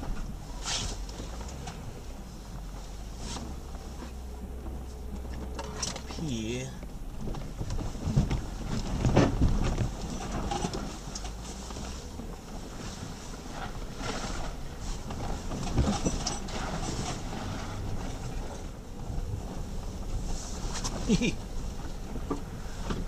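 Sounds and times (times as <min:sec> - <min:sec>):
body and suspension rattles: 0:00.0 - 0:23.0
low engine and drivetrain hum: 0:00.0 - 0:23.0.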